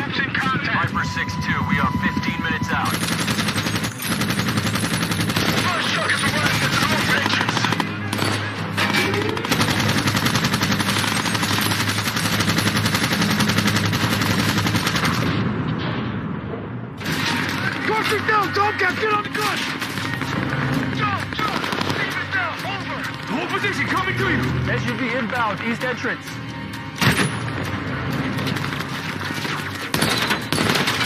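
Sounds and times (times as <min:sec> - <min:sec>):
low film score: 0:00.0 - 0:31.0
machine gun firing bursts: 0:02.7 - 0:15.4, 0:17.0 - 0:22.4, 0:28.2 - 0:31.0.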